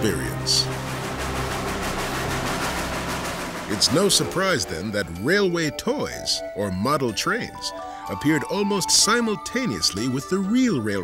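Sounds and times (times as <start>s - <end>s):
steam locomotive passing: 0.0s - 11.0s.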